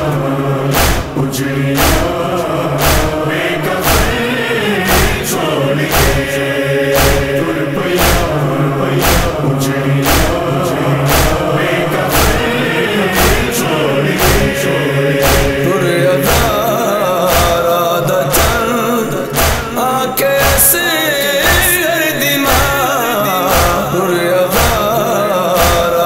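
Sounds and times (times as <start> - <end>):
chest-beating strikes: 0.0 - 21.8
chorus chanting in unison: 0.0 - 26.0.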